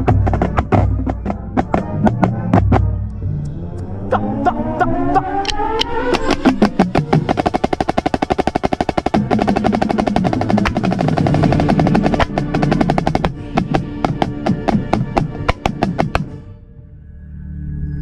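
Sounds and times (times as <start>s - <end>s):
marching snare drum: 0.0s - 2.9s, 6.1s - 16.3s.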